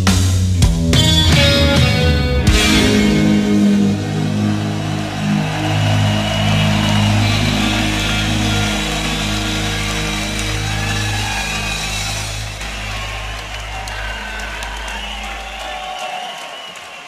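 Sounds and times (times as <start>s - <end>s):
heavy metal chord ringing out: 1.7s - 15.5s.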